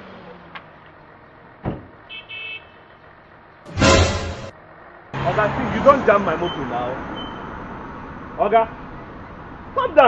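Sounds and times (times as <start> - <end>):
loud burst of sound: 3.7 - 4.5.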